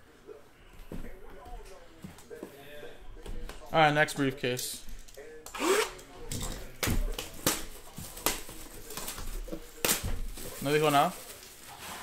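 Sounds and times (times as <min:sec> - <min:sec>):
plastic wrap rustling: 0:06.6 - 0:12.0.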